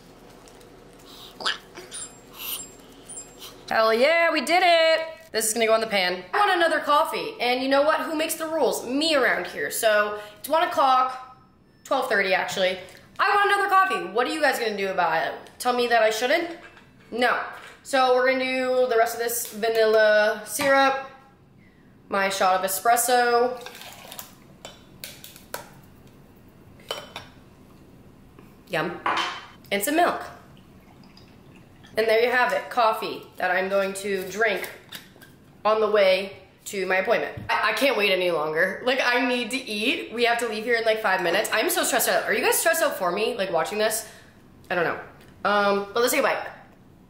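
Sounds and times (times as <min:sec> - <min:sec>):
plastic bag crinkling: 0:00.1 - 0:03.0.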